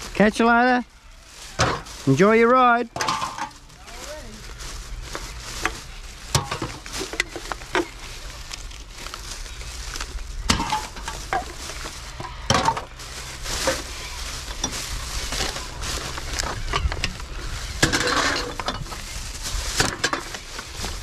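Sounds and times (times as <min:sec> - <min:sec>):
plastic bag rustling: 0:00.0 - 0:21.0
cans and bottles clinking: 0:02.9 - 0:03.6, 0:06.3 - 0:08.0, 0:10.5 - 0:13.0, 0:17.8 - 0:19.0.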